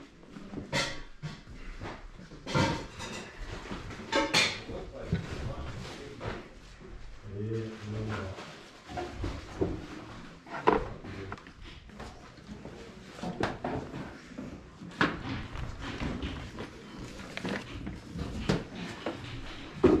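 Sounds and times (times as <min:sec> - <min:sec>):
objects knocking and clattering: 0:00.3 - 0:06.4, 0:08.1 - 0:20.0.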